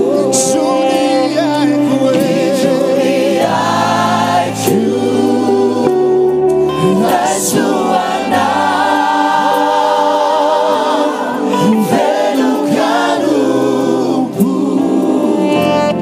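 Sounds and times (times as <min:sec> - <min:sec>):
man singing lead: 0:00.0 - 0:03.5
backing vocalists singing: 0:00.0 - 0:16.0
band playing: 0:00.0 - 0:16.0.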